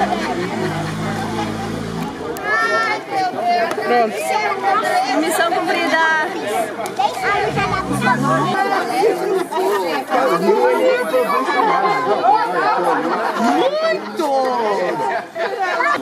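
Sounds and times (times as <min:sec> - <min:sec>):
many people chattering: 0:00.0 - 0:16.0.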